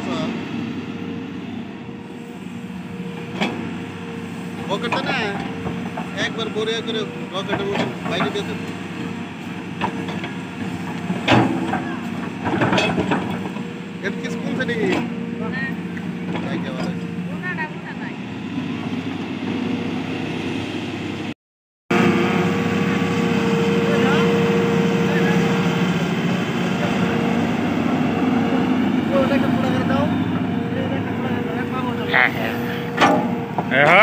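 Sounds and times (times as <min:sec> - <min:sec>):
excavator diesel engine running: 0:00.0 - 0:21.3, 0:21.9 - 0:34.0
voices chattering: 0:23.4 - 0:33.0.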